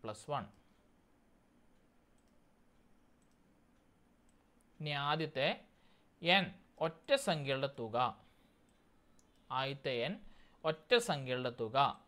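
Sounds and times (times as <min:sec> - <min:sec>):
faint mouse clicks: 0:01.7 - 0:04.9, 0:08.6 - 0:09.5.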